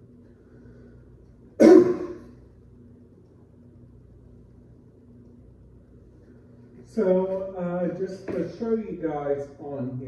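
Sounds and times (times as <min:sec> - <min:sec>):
man coughing: 0:01.6 - 0:02.3.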